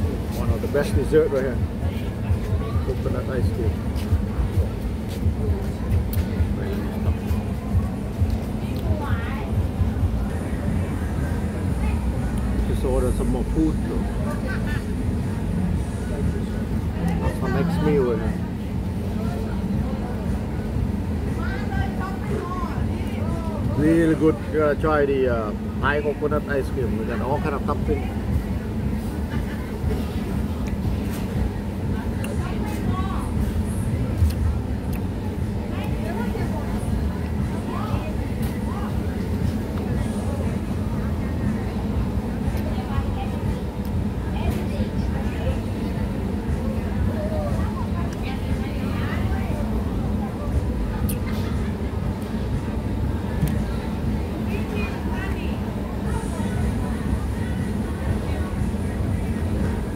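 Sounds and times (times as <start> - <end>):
low street rumble: 0.0 - 59.9
people's voices: 0.0 - 59.9.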